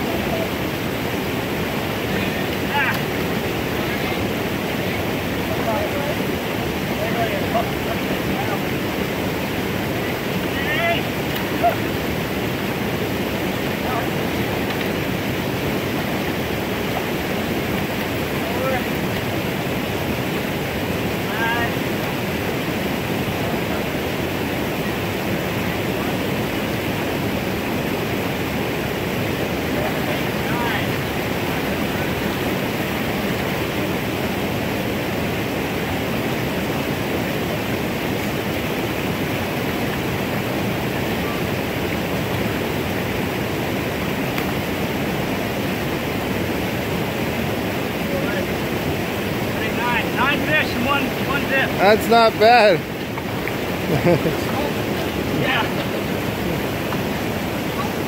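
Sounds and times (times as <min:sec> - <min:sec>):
waterfall rushing into pool: 0:00.0 - 0:58.0.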